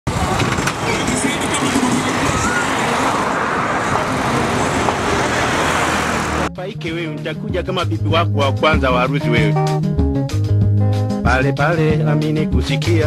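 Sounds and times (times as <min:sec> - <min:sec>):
motorcycle and car traffic: 0:00.0 - 0:06.5
people's voices: 0:00.1 - 0:06.5.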